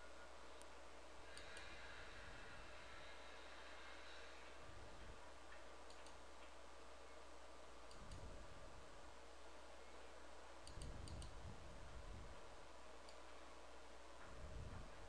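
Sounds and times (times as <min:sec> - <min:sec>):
steady low hum: 0:00.0 - 0:15.0
computer mouse clicks: 0:01.3 - 0:01.8, 0:05.5 - 0:06.6, 0:07.8 - 0:08.3, 0:10.6 - 0:11.4, 0:13.0 - 0:13.4.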